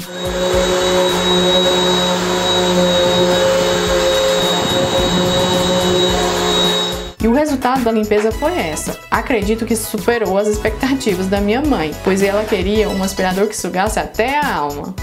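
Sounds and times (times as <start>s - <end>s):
vacuum cleaner running: 0.0s - 7.2s.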